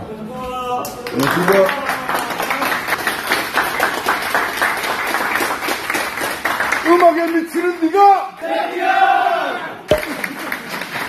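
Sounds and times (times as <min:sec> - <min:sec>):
people clapping: 0:00.8 - 0:08.1, 0:09.9 - 0:11.0.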